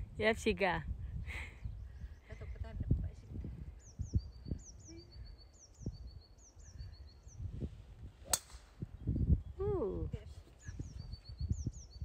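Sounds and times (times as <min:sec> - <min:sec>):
small bird singing: 0:01.5 - 0:12.0
golf driver striking ball: 0:08.3 - 0:08.7.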